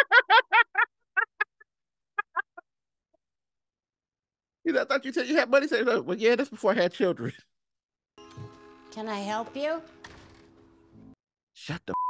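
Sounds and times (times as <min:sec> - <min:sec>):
man laughing heartily: 0:00.0 - 0:02.6.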